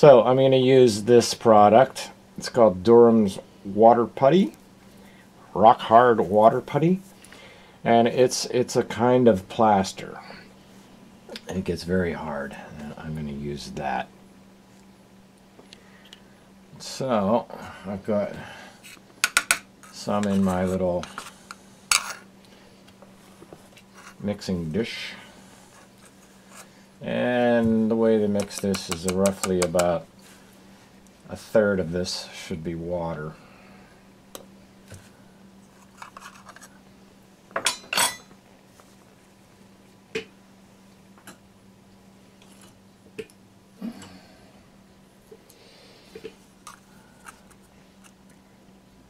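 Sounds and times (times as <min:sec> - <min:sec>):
low steady hum: 0:00.0 - 0:49.0.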